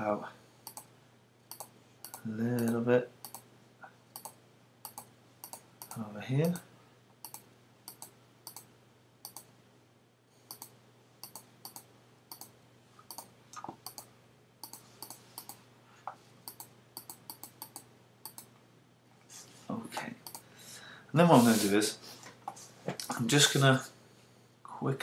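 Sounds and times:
faint steady hum: 0.0s - 25.0s
computer mouse clicks: 0.6s - 0.9s, 1.5s - 3.5s, 4.2s - 6.6s, 7.2s - 9.5s, 10.5s - 15.6s, 16.5s - 18.5s, 20.2s - 20.5s.

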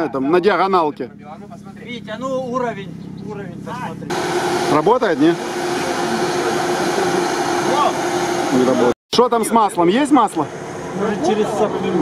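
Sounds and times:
steady motor drone: 2.7s - 8.9s.

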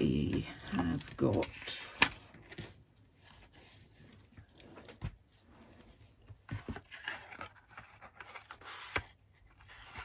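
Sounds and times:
faint handling sounds: 0.0s - 10.0s.

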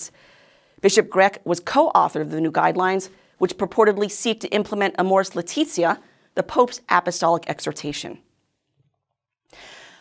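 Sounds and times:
woman speaking: 0.8s - 8.3s.

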